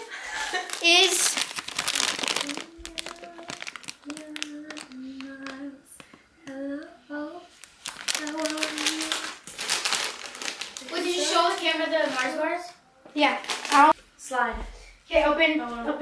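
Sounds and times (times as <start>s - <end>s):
plastic bag crinkling: 0.3s - 6.1s, 7.5s - 12.5s, 13.2s - 14.0s
person humming: 2.3s - 7.4s.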